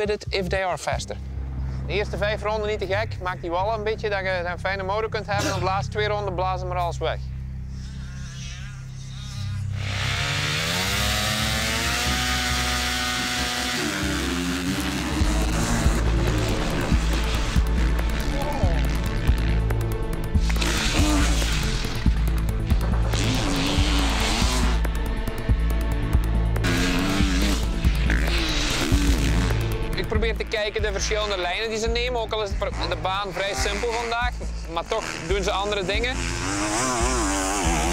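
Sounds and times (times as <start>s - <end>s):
background music with heavy bass: 0.0s - 37.9s
motorcycle engines revving: 7.8s - 37.9s.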